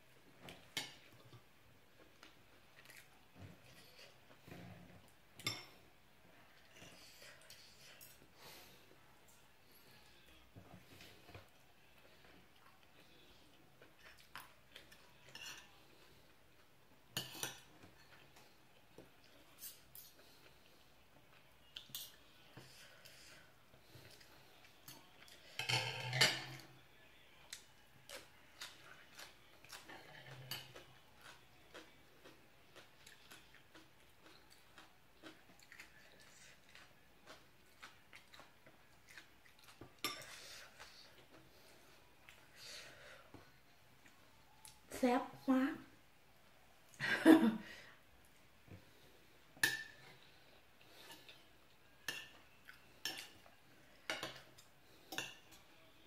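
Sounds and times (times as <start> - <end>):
soft eating sounds: 0.0 - 56.0
cutlery scraping on plate: 5.4 - 5.8, 15.3 - 15.8, 17.2 - 18.2, 24.9 - 26.6, 40.0 - 40.9, 49.6 - 50.2, 52.1 - 52.4, 54.0 - 55.6
metal spoon clinking on dishes: 49.6 - 50.0.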